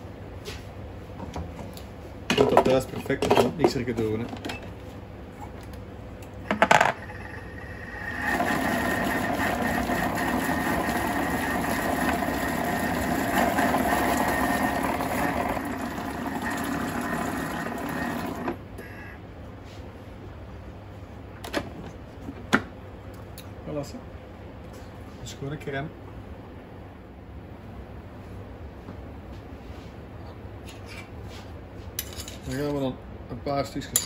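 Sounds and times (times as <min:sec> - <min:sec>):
blender running: 0:06.9 - 0:18.6.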